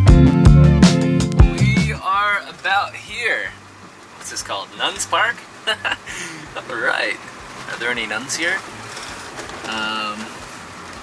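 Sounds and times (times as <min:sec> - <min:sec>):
rain or wet tyres: 0:01.3 - 0:11.0
man's voice holding a note: 0:01.6 - 0:03.6, 0:04.2 - 0:05.4, 0:06.6 - 0:08.6, 0:09.6 - 0:10.4
bus hiss on the move: 0:02.0 - 0:11.0.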